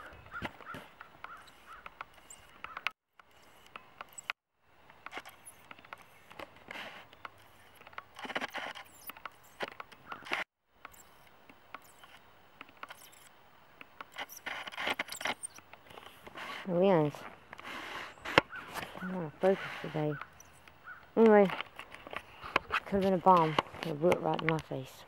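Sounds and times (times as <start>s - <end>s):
sharp clicks: 0.6s - 16.1s.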